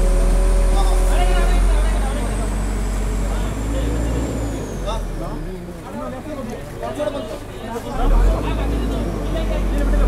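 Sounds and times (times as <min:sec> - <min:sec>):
background voices talking: 0:00.0 - 0:10.0
excavator diesel engine rumbling: 0:00.0 - 0:10.0.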